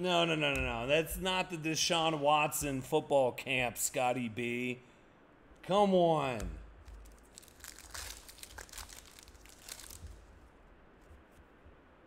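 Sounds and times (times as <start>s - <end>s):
foil wrapper crinkling: 6.8s - 10.5s.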